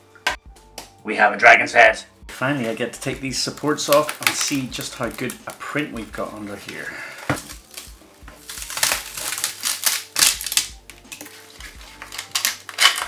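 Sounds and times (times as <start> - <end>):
quiet background music: 0.0 - 13.0
plastic cracking and crunching: 2.4 - 13.0.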